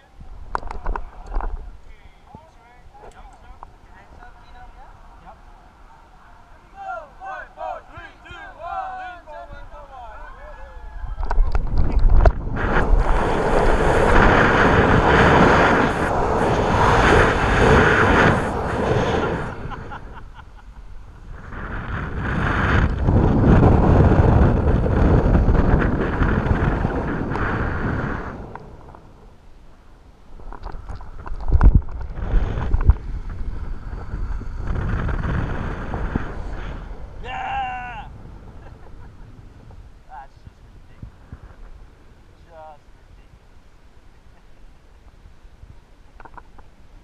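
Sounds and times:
wind rushing over microphone: 0:00.0 - 0:43.6
person shouting: 0:37.2 - 0:38.1.

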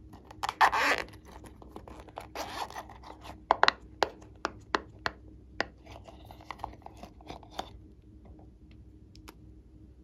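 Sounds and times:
zipper drawn: 0:00.5 - 0:01.2.

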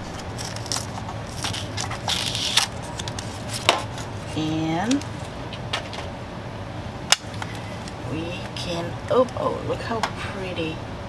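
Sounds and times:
cardboard sleeve scraping and rustling: 0:00.0 - 0:04.4.

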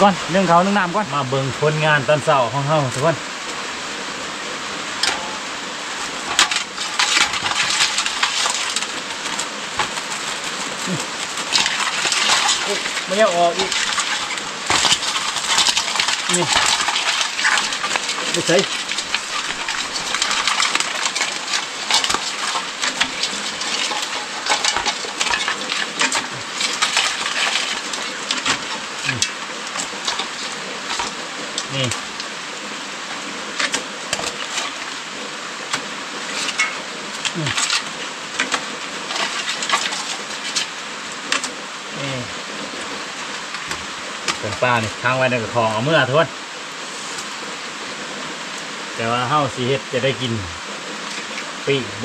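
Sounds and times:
rain on a metal roof: 0:00.0 - 0:52.0.

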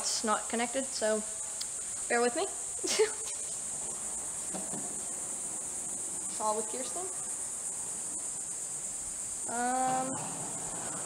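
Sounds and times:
high-pitched whine: 0:03.3 - 0:11.0.

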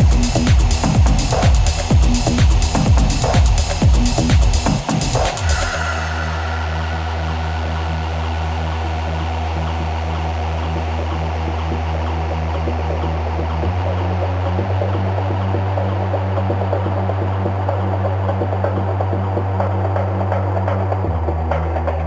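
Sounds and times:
deep bass drone: 0:00.0 - 0:22.0
pulsing synth line: 0:05.2 - 0:11.8.

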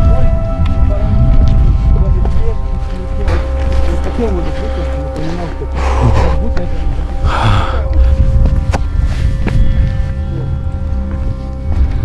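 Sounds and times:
wind buffeting microphone: 0:00.0 - 0:04.5, 0:06.3 - 0:12.0
person breathing: 0:04.5 - 0:06.4, 0:07.2 - 0:11.1.

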